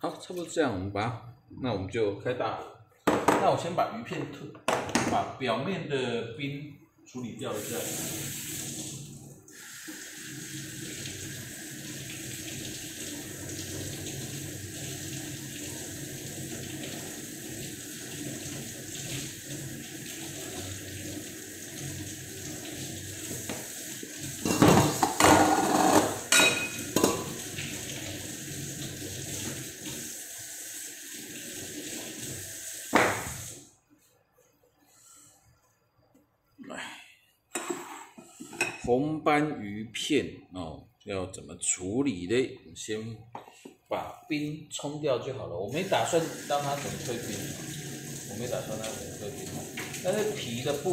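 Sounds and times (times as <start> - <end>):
knock: 3.0 - 3.5, 32.9 - 33.4
dishes clattering: 3.0 - 5.2, 24.4 - 27.4, 37.5 - 38.9
tap running into a sink: 23.2 - 23.8, 32.9 - 33.6, 48.8 - 50.2.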